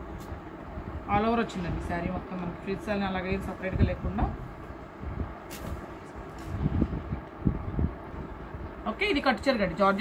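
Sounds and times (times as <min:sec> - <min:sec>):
steady low rumble: 0:00.0 - 0:10.0
fabric swish: 0:05.5 - 0:06.6.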